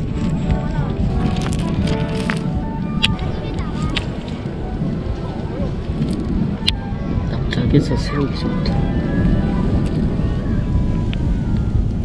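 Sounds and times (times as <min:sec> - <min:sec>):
music: 0:00.0 - 0:12.0
ocean surf: 0:00.0 - 0:12.0
people's voices: 0:00.0 - 0:12.0
wind: 0:00.0 - 0:12.0.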